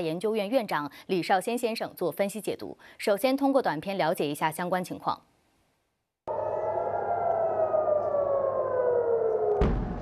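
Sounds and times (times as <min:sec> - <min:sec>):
air-raid siren falling tone: 0:06.3 - 0:10.0.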